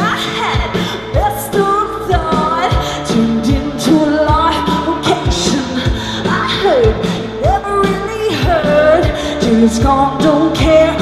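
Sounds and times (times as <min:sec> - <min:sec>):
bass guitar: 0:00.0 - 0:11.0
woman singing lead vocal: 0:00.0 - 0:11.0.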